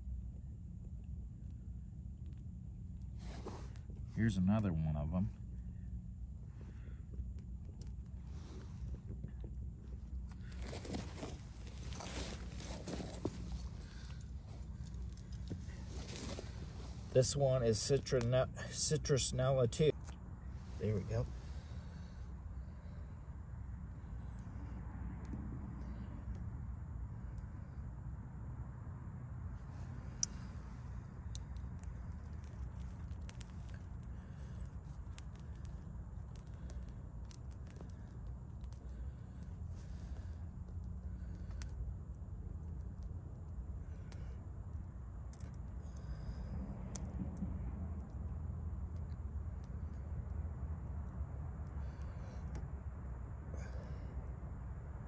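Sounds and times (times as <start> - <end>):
steady low rumble: 0.0 - 55.0
fire crackling and popping: 0.1 - 28.4, 29.2 - 54.1.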